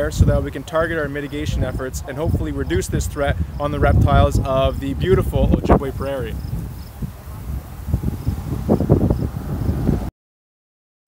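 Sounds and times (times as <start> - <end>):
wind rumble on microphone: 0.0 - 10.1
high insect chirps: 6.3 - 7.1, 7.8 - 9.3.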